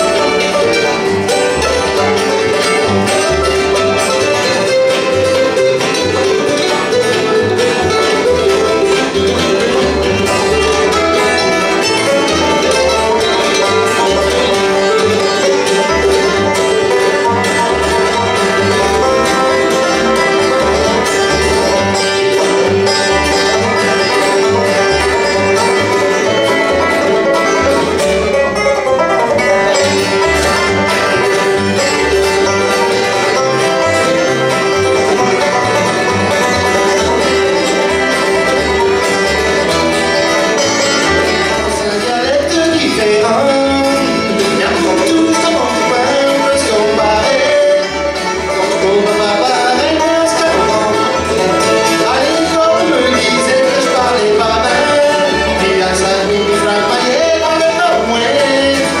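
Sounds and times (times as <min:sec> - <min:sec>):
acoustic guitar: 0:00.0 - 0:59.0
banjo: 0:00.0 - 0:59.0
fiddle: 0:00.0 - 0:59.0
mandolin: 0:00.0 - 0:59.0
upright bass plucking: 0:00.0 - 0:59.0.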